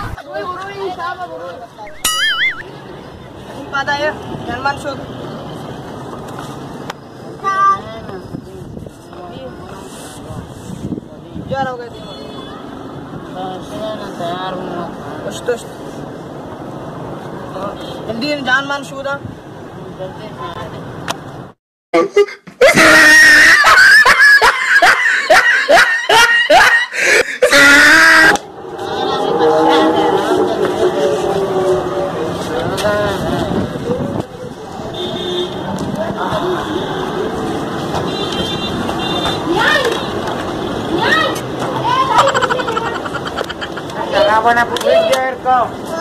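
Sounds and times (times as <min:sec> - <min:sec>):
outdoor background noise: 0:00.0 - 0:46.0
person laughing or screaming wildly: 0:01.9 - 0:02.7, 0:22.0 - 0:28.4, 0:42.1 - 0:43.8.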